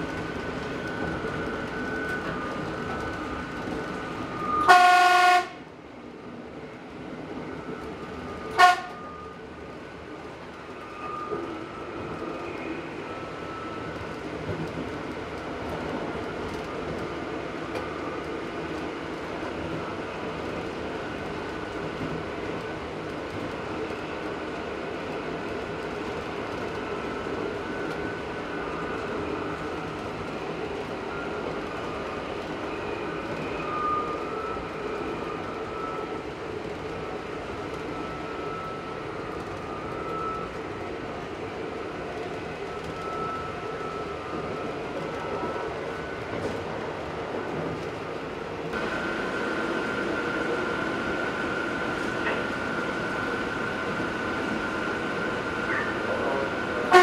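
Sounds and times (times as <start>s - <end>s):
diesel railcar engine: 0.0s - 57.0s.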